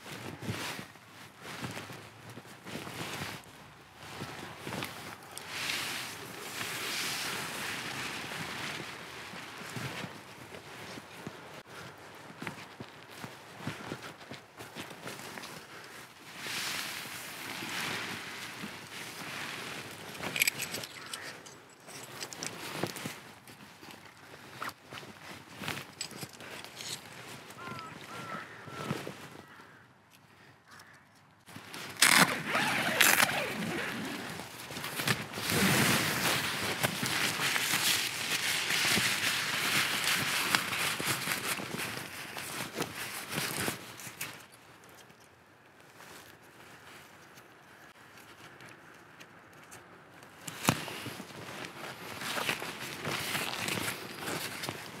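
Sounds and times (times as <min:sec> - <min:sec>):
nylon fabric rustling: 0:00.1 - 0:11.6, 0:12.4 - 0:29.3, 0:31.5 - 0:44.4, 0:50.4 - 0:55.0
footsteps on leaf litter: 0:31.6 - 0:43.9.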